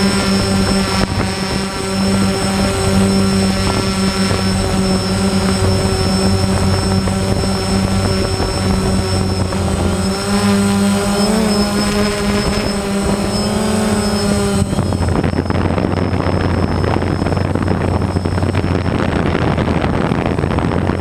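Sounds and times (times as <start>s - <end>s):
drone propellers whining: 0.0s - 21.0s.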